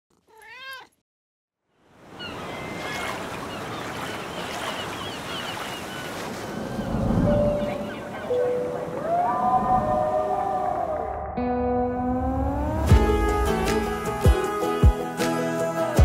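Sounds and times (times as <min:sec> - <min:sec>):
ocean surf washing in: 0:02.0 - 0:15.4.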